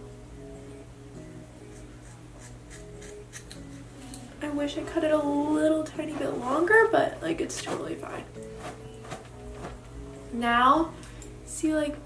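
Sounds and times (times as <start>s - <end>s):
scissors snipping hair: 1.7s - 4.2s.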